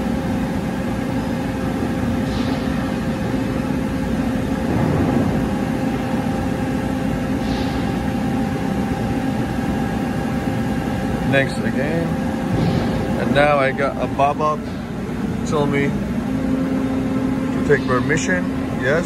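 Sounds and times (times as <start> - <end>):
machine hum: 0.0 - 19.0.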